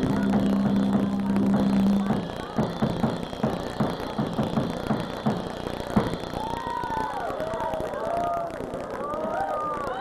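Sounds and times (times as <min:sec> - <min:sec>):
drums pounding: 0:00.0 - 0:08.0.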